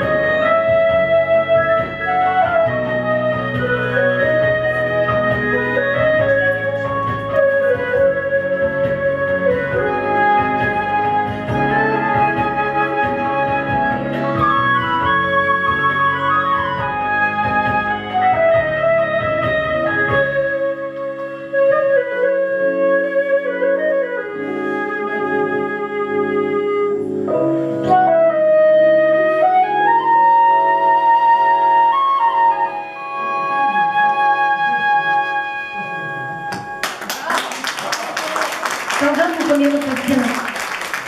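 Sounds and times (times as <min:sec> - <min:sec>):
flute playing slow melody: 0:00.0 - 0:36.9.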